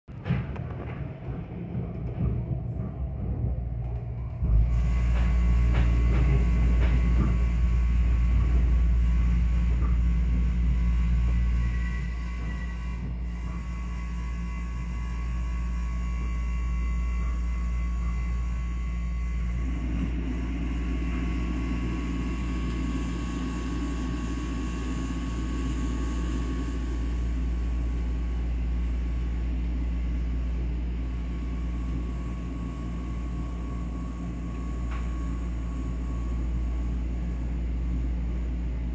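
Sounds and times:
train carriage rumble: 0:00.1 - 0:38.9.

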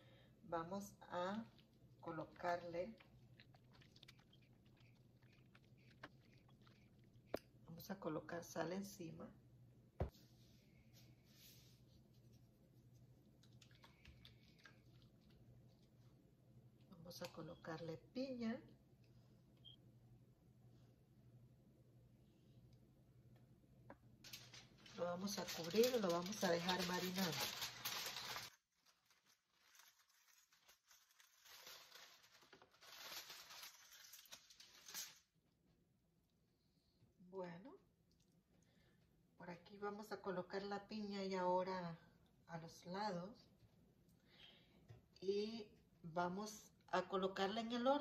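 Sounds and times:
aluminium foil crinkling: 0:01.2 - 0:07.3, 0:24.2 - 0:35.3.

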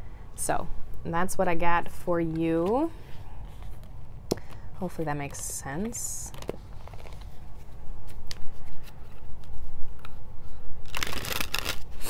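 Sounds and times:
deck of cards shuffling: 0:05.3 - 0:10.2, 0:10.8 - 0:12.0.

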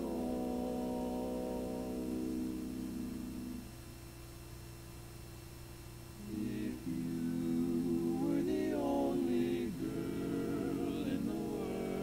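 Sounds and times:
male vocal quartet chord: 0:00.0 - 0:03.6, 0:06.2 - 0:12.0
low steady hum: 0:00.0 - 0:12.0.

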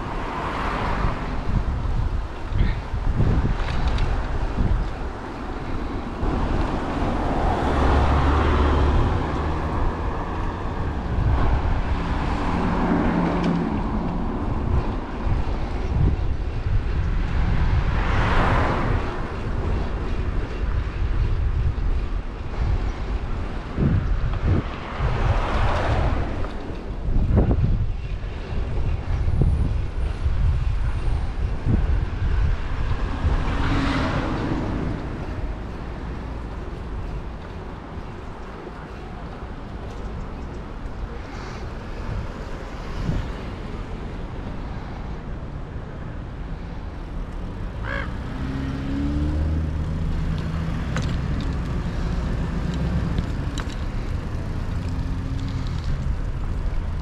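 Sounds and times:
cars passing: 0:00.0 - 0:57.0
wind rumble on microphone: 0:00.0 - 0:57.0.

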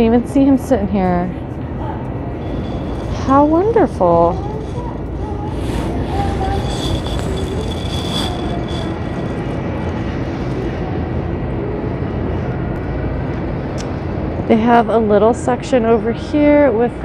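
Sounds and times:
low store rumble: 0:01.3 - 0:12.8
thin high whine: 0:01.8 - 0:12.4.

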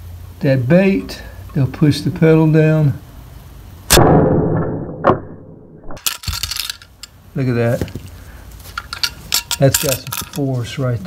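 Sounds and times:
wire bar and spring rattling: 0:06.0 - 0:07.2, 0:08.7 - 0:10.6.

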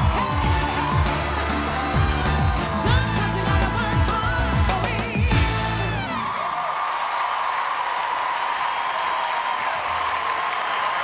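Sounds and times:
live band dance music: 0:00.0 - 0:06.4
audience applause and cheering: 0:00.0 - 0:11.0.

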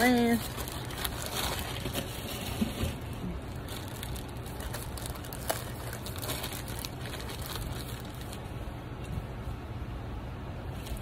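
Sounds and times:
plastic bag crinkling: 0:00.0 - 0:08.6
steady low hum: 0:00.0 - 0:11.0.

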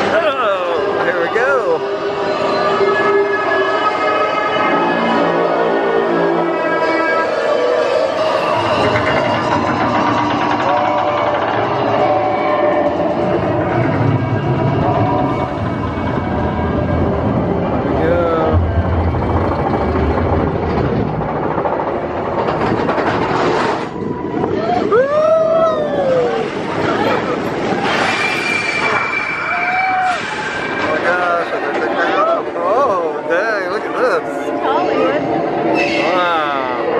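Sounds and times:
roller coaster wheels rumbling on rails: 0:00.0 - 0:36.9
rider screaming: 0:28.2 - 0:30.8.

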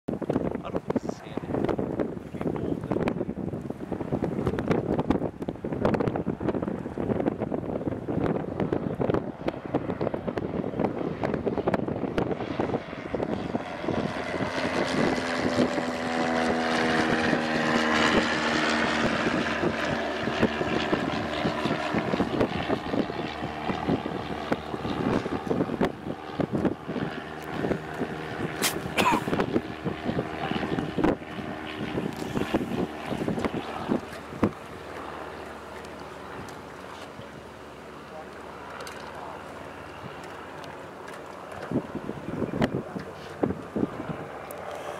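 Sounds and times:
propeller aircraft engine drone: 0:00.1 - 0:44.9
wind buffeting microphone: 0:00.1 - 0:44.9.

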